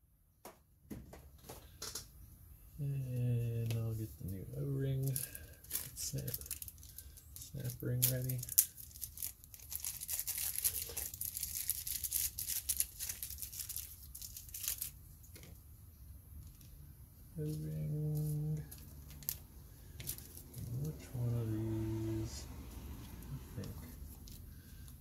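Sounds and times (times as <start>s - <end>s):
plastic bag crinkling: 5.0s - 15.4s, 18.2s - 21.0s.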